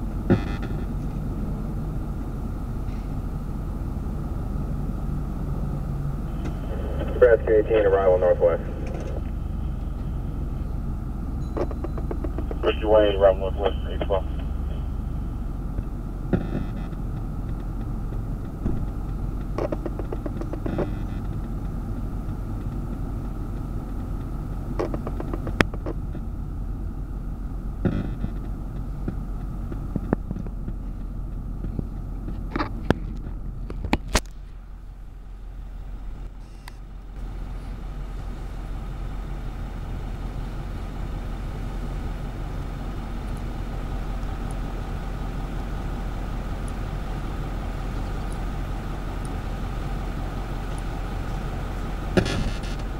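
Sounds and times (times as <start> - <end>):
construction machinery engine rumble: 0.0 - 52.9.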